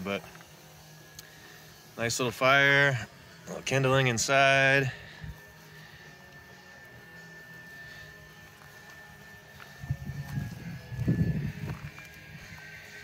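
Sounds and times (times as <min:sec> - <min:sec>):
log fire crackling: 0:00.0 - 0:13.0
thin steady high whine: 0:00.0 - 0:13.0.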